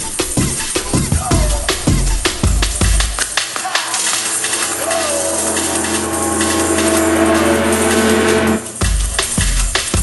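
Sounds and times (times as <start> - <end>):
sustained synth tones: 4.1 - 8.8
bass drone: 4.2 - 10.0
synth pitch glide: 4.4 - 8.8.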